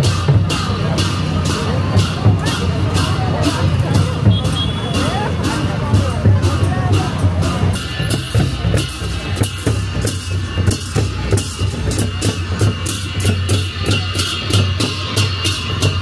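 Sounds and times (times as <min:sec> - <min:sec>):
drums and cymbals fast beat: 0:00.0 - 0:16.0.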